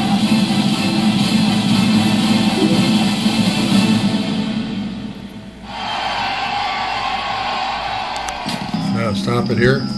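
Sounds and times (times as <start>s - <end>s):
soundtrack music: 2.4s - 4.6s.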